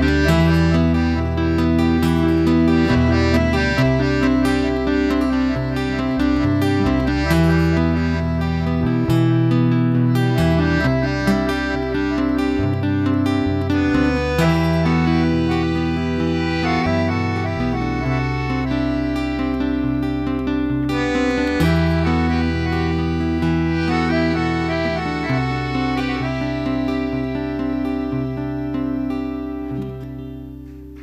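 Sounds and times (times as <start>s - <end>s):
bass: 0.0s - 31.0s
piano accordion melody: 0.0s - 31.0s
strummed acoustic guitar: 0.0s - 31.0s.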